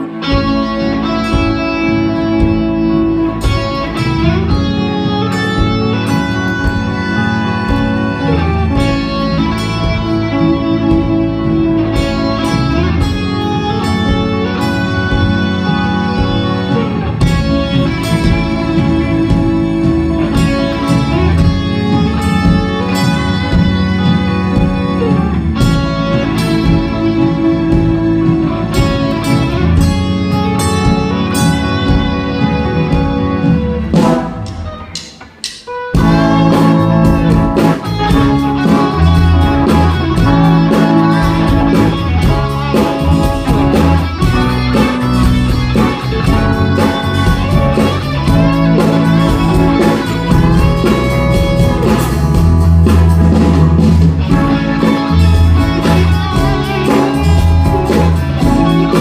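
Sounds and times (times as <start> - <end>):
live band playing guitar music: 0.0 - 59.0.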